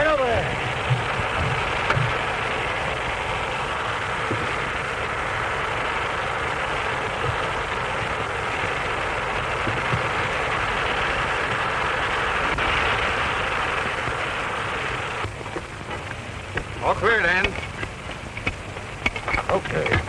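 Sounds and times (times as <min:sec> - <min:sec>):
steam hissing and rushing: 0:00.0 - 0:20.0.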